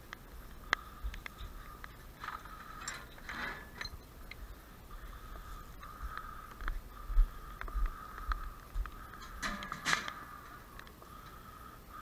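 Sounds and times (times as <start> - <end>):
glass rattling among trash: 2.4 - 4.1.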